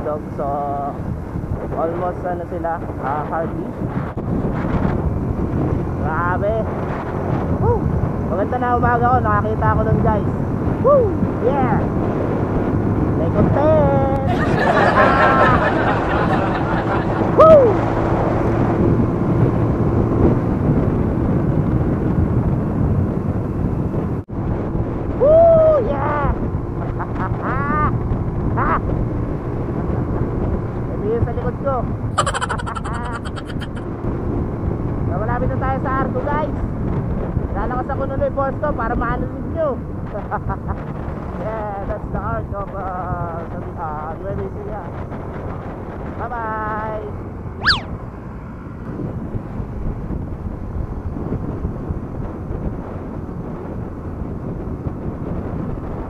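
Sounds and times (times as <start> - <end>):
motorcycle engine hum: 0.0 - 14.0, 31.8 - 35.1
wind rushing over microphone: 0.0 - 56.0.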